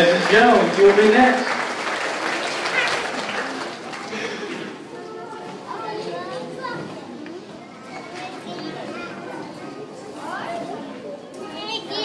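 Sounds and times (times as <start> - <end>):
children talking: 2.1 - 12.0.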